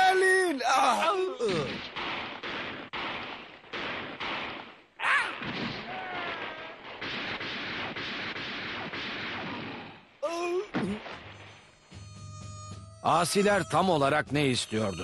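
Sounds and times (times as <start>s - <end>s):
man shouting: 0.0s - 1.7s
musket shots: 1.6s - 10.1s
continuous rattle of gunfire: 1.8s - 4.8s, 5.4s - 10.0s.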